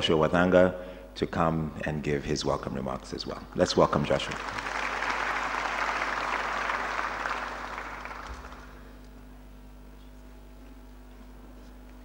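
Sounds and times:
audience applauding: 4.0s - 8.8s.

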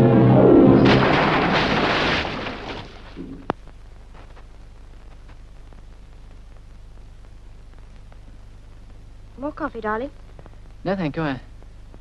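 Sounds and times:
man jumping into river splash: 0.8s - 3.2s.

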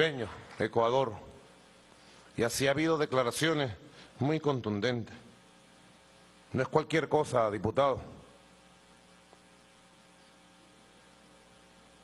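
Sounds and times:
man speaking: 0.0s - 1.3s, 2.4s - 5.3s, 6.5s - 8.3s
faint electrical hum: 0.0s - 12.0s.

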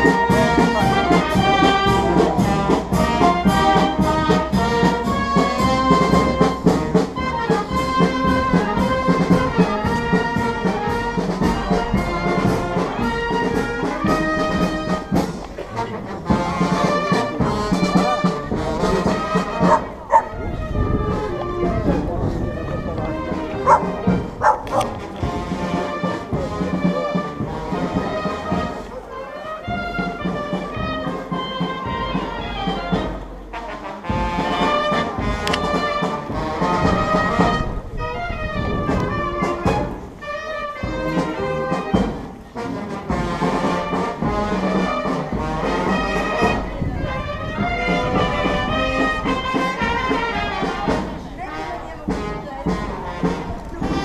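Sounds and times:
brass band playing: 0.0s - 54.0s
people's voices: 0.0s - 54.0s.

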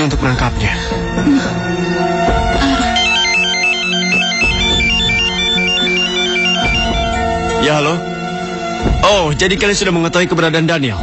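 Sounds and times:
dramatic background music: 0.0s - 11.0s
phone ringtone beeps: 2.9s - 7.4s.

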